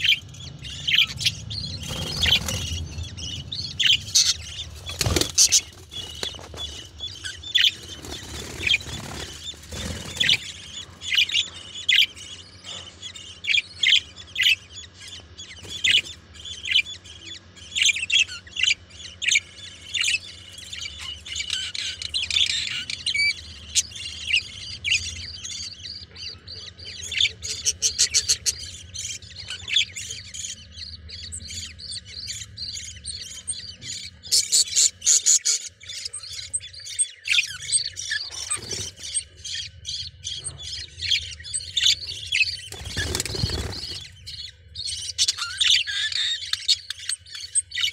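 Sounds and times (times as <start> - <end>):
budgerigars chirping and squawking: 0.0 - 47.9.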